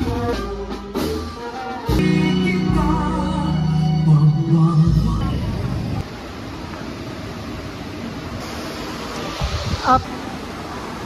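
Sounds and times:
background music: 0.0 - 6.0
indistinct voices: 9.0 - 11.0.

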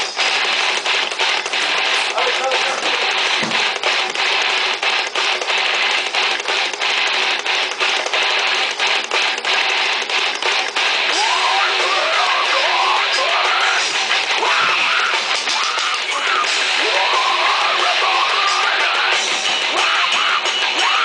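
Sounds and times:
heavy metal band playing: 0.0 - 21.0.

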